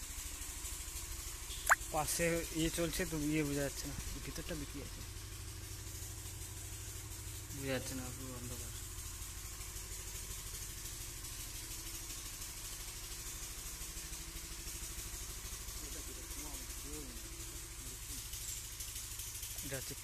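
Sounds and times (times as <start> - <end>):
small engine running: 2.1 - 20.0.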